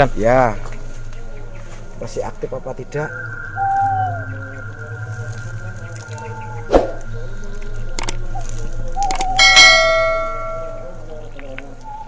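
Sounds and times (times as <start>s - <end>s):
low hum: 0.5s - 11.4s
steady high electronic tone: 9.4s - 11.0s.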